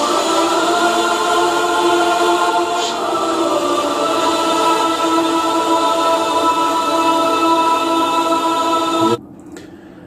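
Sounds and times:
choir singing held notes: 0:00.0 - 0:09.2.

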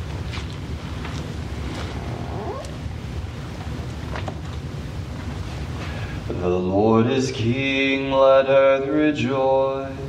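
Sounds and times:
low background rumble: 0:00.0 - 0:10.0
rising squeaky cry: 0:01.9 - 0:02.8.

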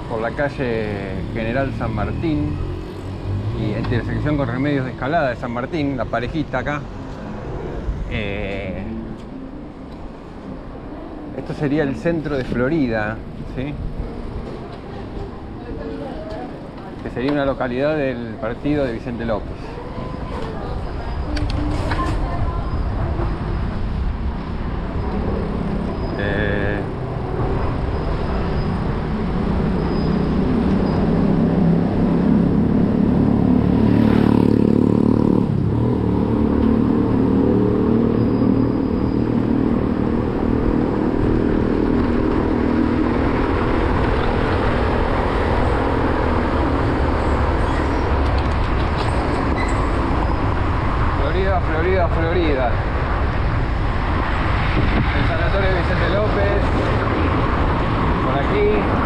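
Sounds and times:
traffic rumble and road noise: 0:00.0 - 0:59.0
engine passing by: 0:24.7 - 0:59.0.

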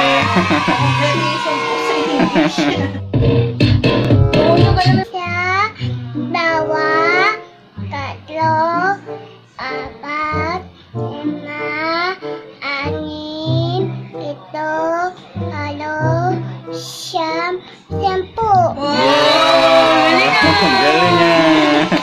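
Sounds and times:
pop dance track: 0:00.0 - 0:05.0
quiet backing music: 0:00.3 - 0:22.0.

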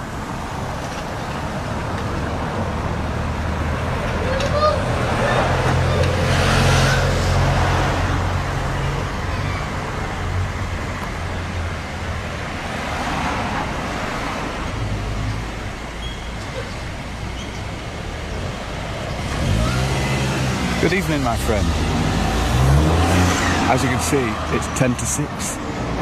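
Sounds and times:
road traffic passing: 0:00.0 - 0:26.0.

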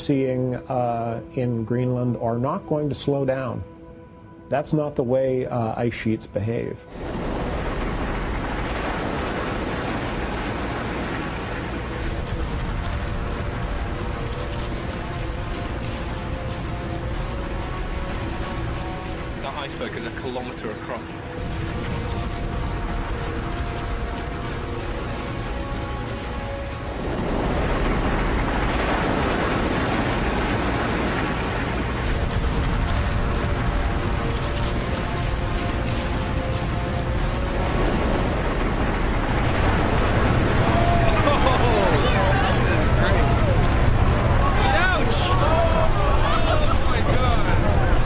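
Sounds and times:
ice collapsing into water: 0:06.9 - 0:48.0
glacier calving rumble: 0:07.0 - 0:48.0.

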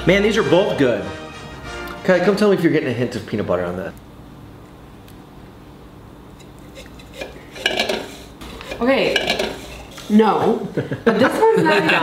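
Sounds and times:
drink cans clinking: 0:06.4 - 0:10.1.

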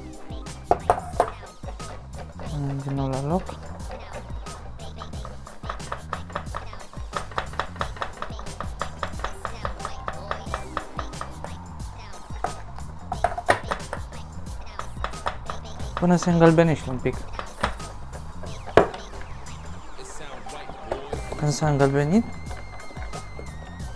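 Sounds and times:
whisk ticking against metal bowl: 0:00.4 - 0:19.2, 0:21.2 - 0:23.9.

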